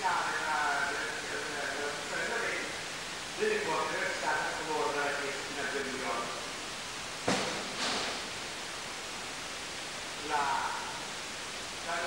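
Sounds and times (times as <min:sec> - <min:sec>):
recording hiss: 0:00.0 - 0:12.0
sharp knock: 0:07.2 - 0:08.2.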